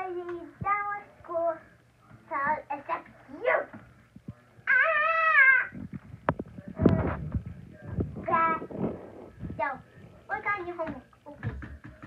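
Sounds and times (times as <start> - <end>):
high drawn-out vocal call: 4.7 - 5.8.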